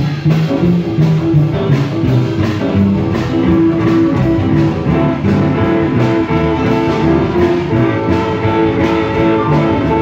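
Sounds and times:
bass line: 0.0s - 10.0s
drums: 0.0s - 10.0s
electric guitar: 0.0s - 10.0s.

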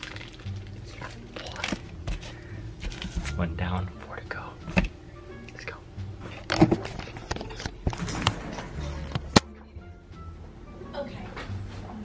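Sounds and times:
background music: 0.0s - 12.0s
man whispering: 5.6s - 5.9s.

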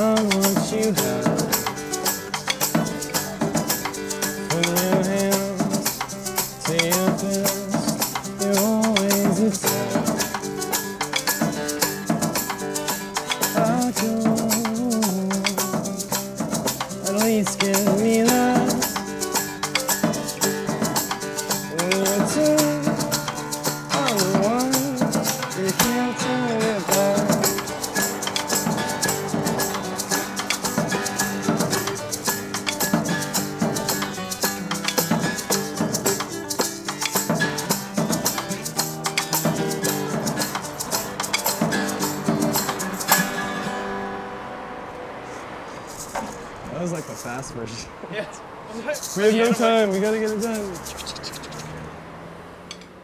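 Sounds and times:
drums and shaker: 0.0s - 43.7s, 45.7s - 47.5s, 48.7s - 51.8s
acoustic guitar strummed fast: 0.0s - 45.2s, 48.9s - 51.8s.

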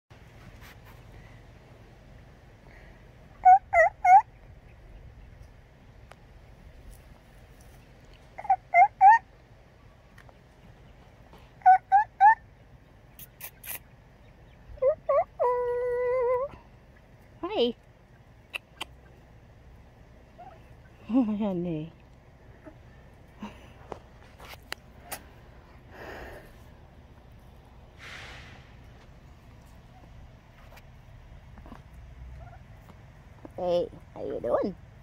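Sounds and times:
turkeys calling: 2.1s - 6.6s, 7.6s - 21.1s, 22.1s - 24.0s, 28.6s - 33.6s.

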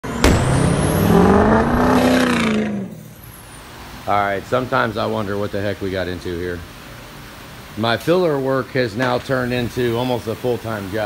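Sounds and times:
engine-like tone rising and falling: 0.0s - 3.2s
sharp hit: 0.0s - 3.2s.

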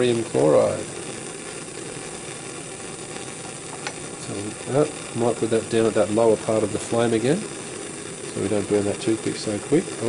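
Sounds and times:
bunsen burner flame rushing: 0.0s - 10.0s.

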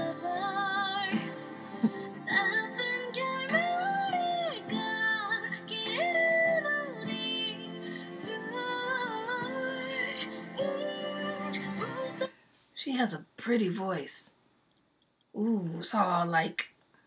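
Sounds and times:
woman singing ballad: 0.0s - 12.4s.

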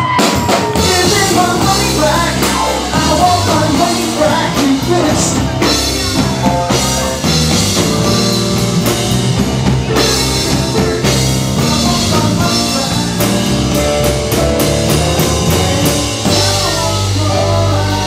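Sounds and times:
live rock band playing: 0.0s - 18.0s.

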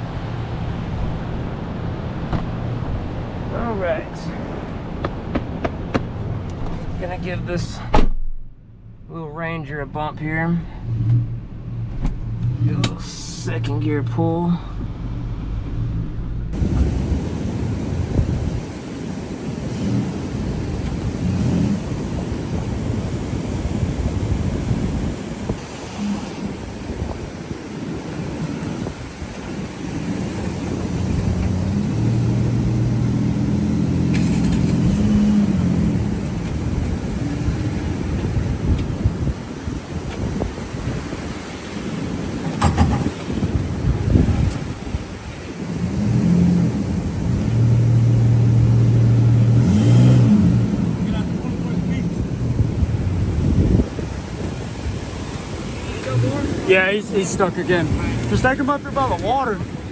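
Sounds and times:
truck engines revving: 0.0s - 7.9s, 8.6s - 59.9s
short knocks: 5.0s - 6.8s.

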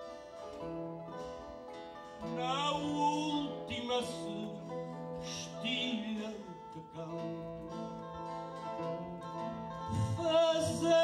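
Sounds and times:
plucked guitar strings: 0.0s - 11.0s.

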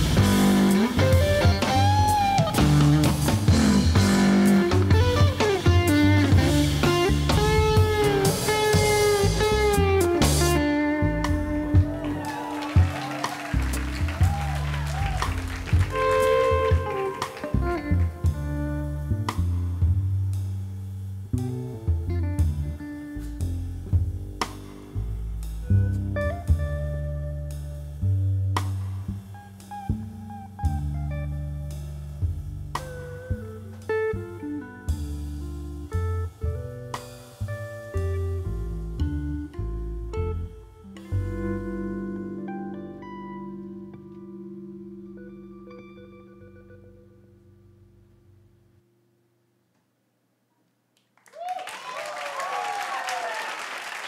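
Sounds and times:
drums with cymbals: 0.0s - 10.6s, 19.3s - 27.9s, 28.6s - 29.8s, 30.7s - 39.2s
electric guitar: 0.0s - 20.3s, 21.3s - 47.9s
upright double bass: 0.0s - 43.9s.

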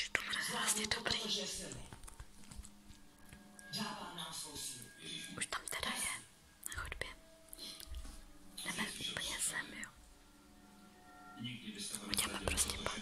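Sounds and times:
person whispering: 0.0s - 2.0s, 5.0s - 7.9s, 8.6s - 10.0s, 11.8s - 13.0s.

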